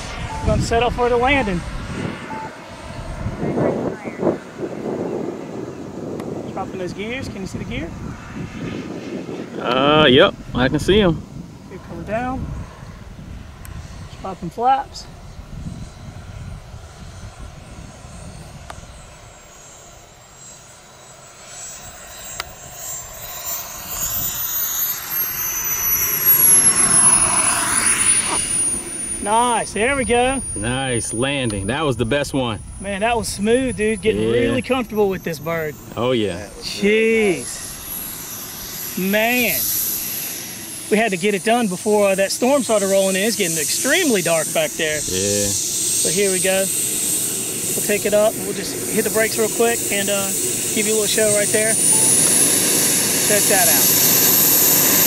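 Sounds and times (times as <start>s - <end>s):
distant model jet turbine: 0.0s - 55.0s
indistinct voices: 29.2s - 37.6s, 40.9s - 46.7s.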